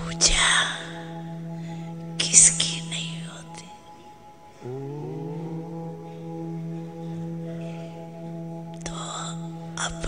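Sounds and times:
breathy whispery sounds: 0.0s - 10.0s
slow meditation music drone: 0.0s - 10.0s.

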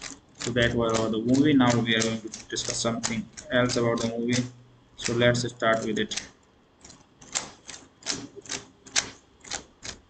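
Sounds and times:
keyboard keys clicking: 0.0s - 10.0s.

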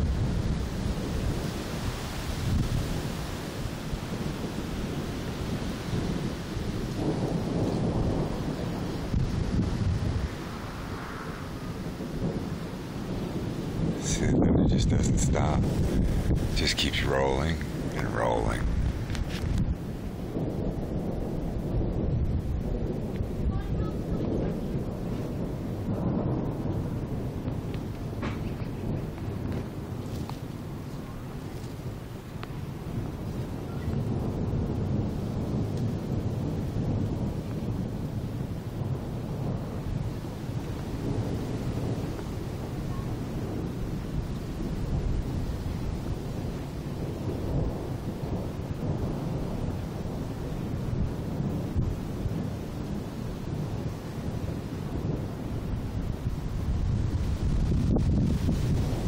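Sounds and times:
rolling thunder: 0.0s - 59.0s.

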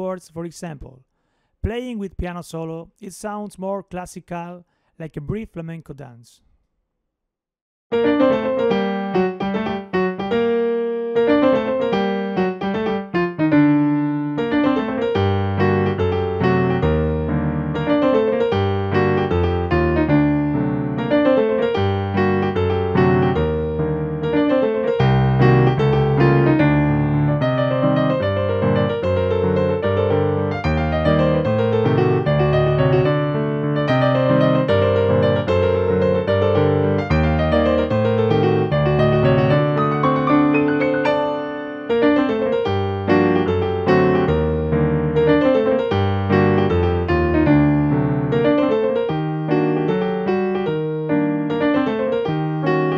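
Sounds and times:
fast piano piece: 7.9s - 52.9s.

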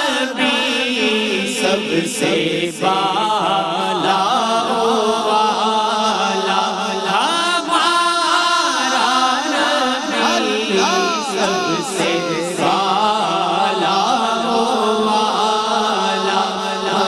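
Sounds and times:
man singing into a microphone: 0.0s - 17.0s.

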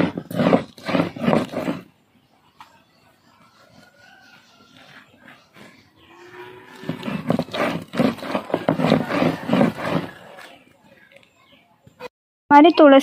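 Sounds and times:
stone roller grinding on slab: 0.0s - 1.9s, 6.4s - 10.6s.

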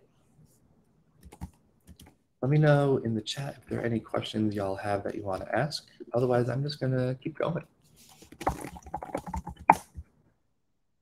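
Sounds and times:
laptop keyboard typing: 1.2s - 2.2s, 8.3s - 10.0s.

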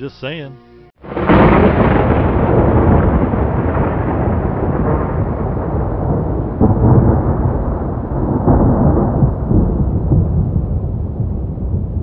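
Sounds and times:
deep rumbling noise: 1.0s - 12.0s.

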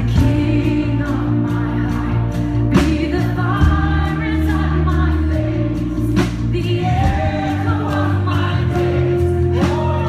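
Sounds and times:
worship band and singers: 0.0s - 10.0s.

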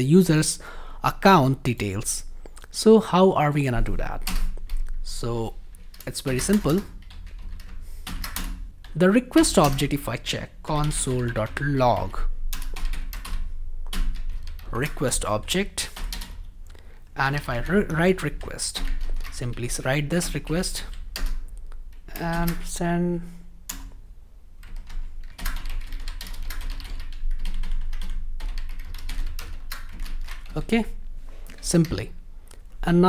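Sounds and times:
low steady hum: 0.0s - 33.0s
typing on computer keyboard: 4.2s - 5.0s, 5.8s - 10.0s, 10.8s - 15.1s, 15.8s - 16.5s, 18.4s - 22.7s, 24.6s - 30.6s.

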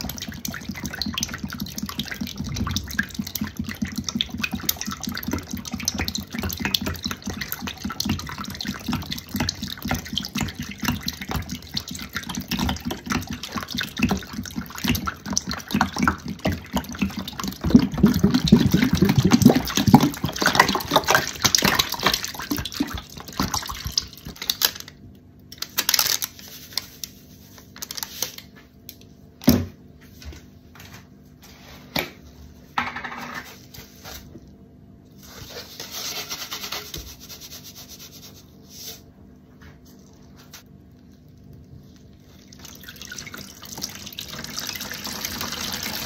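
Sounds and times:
liquid glugging from bottles: 0.0s - 24.6s
liquid splashing into tub: 0.0s - 24.8s, 42.2s - 46.0s
plastic rustle: 25.6s - 28.6s.

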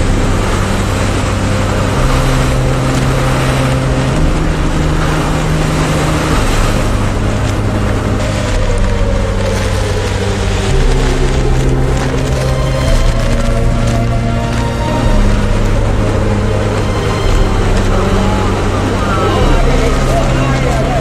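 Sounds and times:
driving rain: 0.0s - 21.0s
low held music notes: 0.0s - 21.0s
strong wind: 0.0s - 21.0s.

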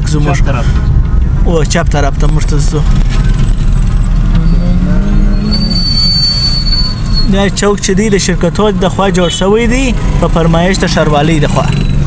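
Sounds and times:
street traffic rumble: 0.0s - 12.0s
high-pitched squeal: 3.1s - 7.7s.

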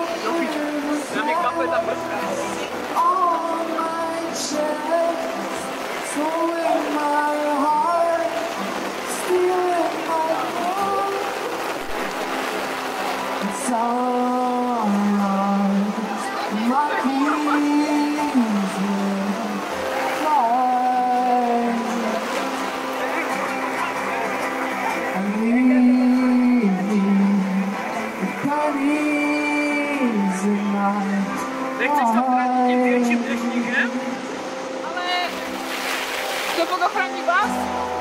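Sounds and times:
man singing: 0.0s - 2.3s, 2.9s - 11.5s, 13.4s - 22.4s, 25.2s - 34.1s
acoustic guitar: 0.0s - 38.0s.

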